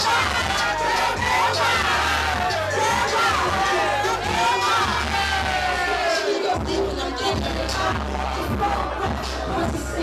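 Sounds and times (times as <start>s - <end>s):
crowd shouting and singing: 0.0s - 10.0s
loud music with pulsing bass: 0.0s - 10.0s.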